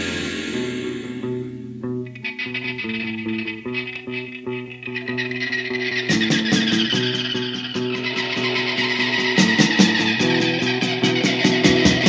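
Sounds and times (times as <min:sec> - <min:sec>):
bass guitar: 0:00.0 - 0:12.0
picked guitar notes: 0:00.0 - 0:12.0
rock band playing: 0:00.0 - 0:12.0.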